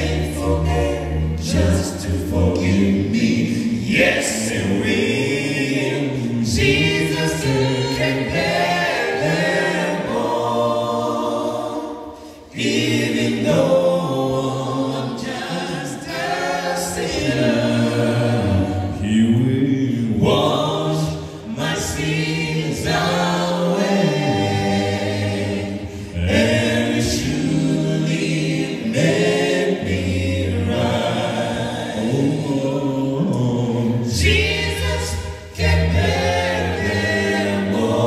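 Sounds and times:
male a cappella group singing: 0.0s - 38.0s.

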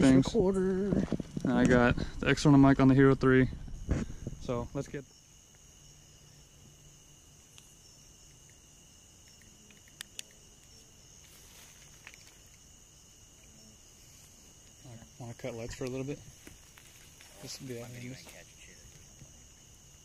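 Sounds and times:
night insects chirring: 0.0s - 20.0s
sharp clicks: 9.2s - 10.8s.

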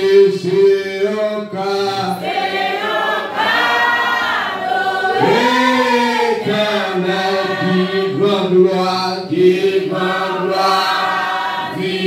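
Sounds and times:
man singing into a microphone: 0.0s - 2.2s, 5.2s - 10.9s
congregation singing a hymn: 0.0s - 12.0s.

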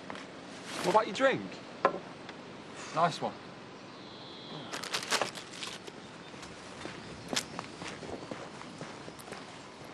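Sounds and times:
outdoor background noise: 0.0s - 9.9s
footsteps on pavement: 5.9s - 9.9s.

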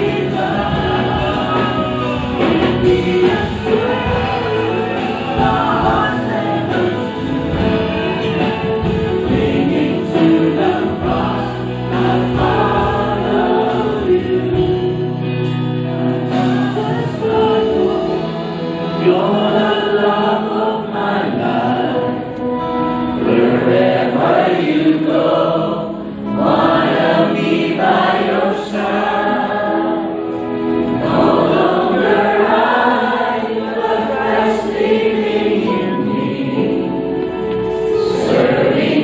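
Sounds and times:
congregation singing: 0.0s - 39.0s
live band playing: 0.0s - 39.0s.

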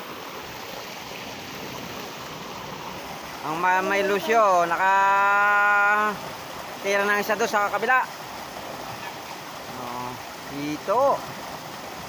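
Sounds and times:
river flowing over rocks: 0.0s - 12.0s.

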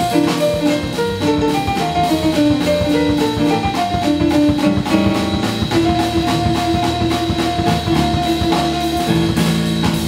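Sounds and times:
walking upright bass: 0.0s - 10.0s.

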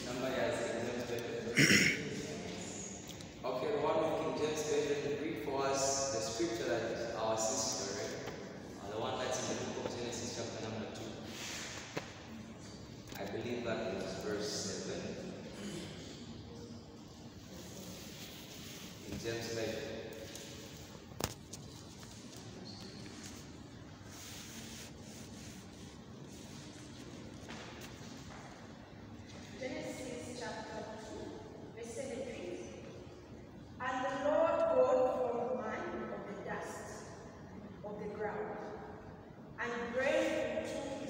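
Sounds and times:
man speaking: 0.0s - 2.6s, 3.4s - 11.3s, 13.1s - 16.0s, 19.0s - 20.2s.

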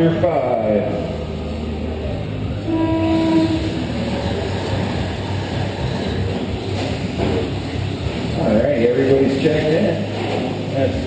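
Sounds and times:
electronic start tone: 2.7s - 3.8s.

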